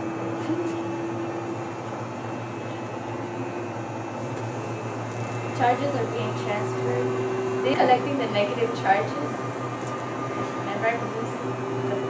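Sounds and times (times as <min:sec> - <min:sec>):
generator motor humming: 0:00.0 - 0:12.0.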